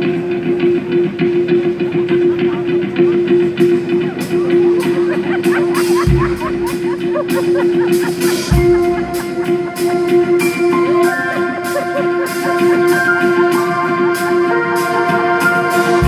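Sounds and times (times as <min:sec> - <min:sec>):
guitar notes: 0:00.0 - 0:16.0
live band playing: 0:00.0 - 0:16.0.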